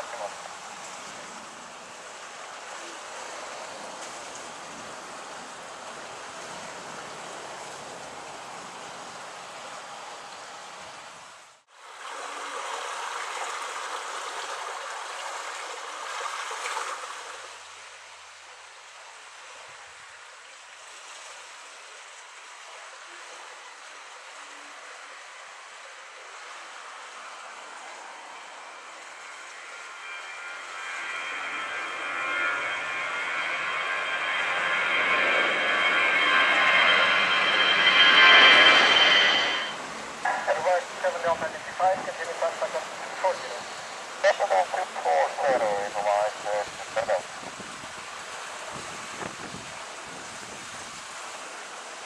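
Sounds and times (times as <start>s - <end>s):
jet engines rushing: 27.4s - 50.4s
wind noise: 46.7s - 51.2s.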